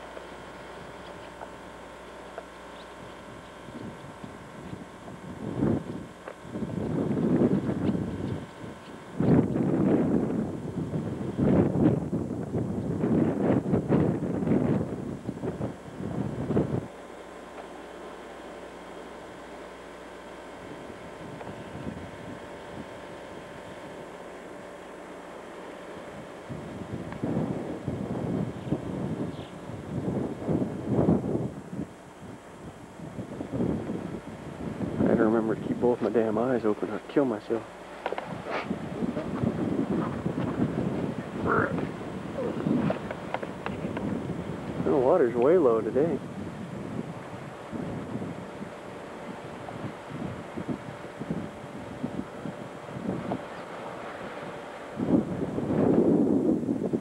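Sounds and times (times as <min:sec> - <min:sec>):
wind buffeting microphone: 0:02.7 - 0:17.0, 0:20.4 - 0:57.0.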